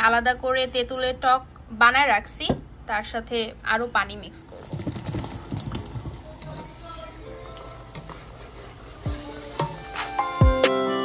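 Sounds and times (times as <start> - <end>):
faint background music: 0.0 - 11.0
hot oil sizzling: 4.5 - 10.5.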